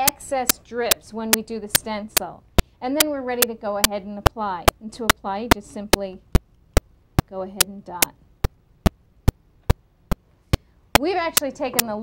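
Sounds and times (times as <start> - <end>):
speech: 0.0 - 6.2, 7.3 - 8.2, 11.0 - 12.0
low electrical hum: 0.0 - 12.0
sharp evenly spaced clicks: 0.0 - 12.0.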